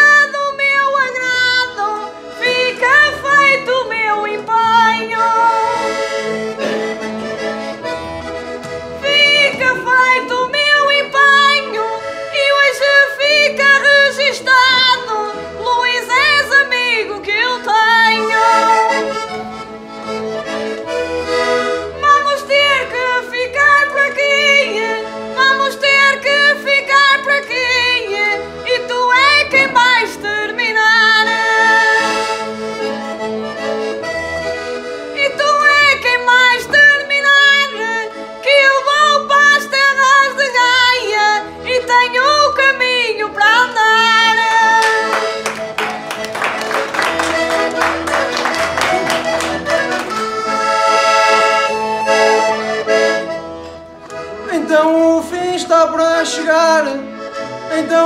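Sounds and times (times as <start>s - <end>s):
button accordion melody: 0.0s - 58.0s
oom-pah bass: 1.9s - 22.0s.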